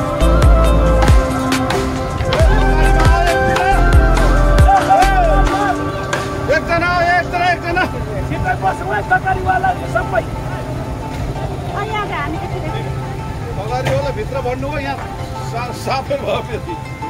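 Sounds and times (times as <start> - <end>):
people talking: 0.0 - 17.0
steady tones: 0.0 - 17.0.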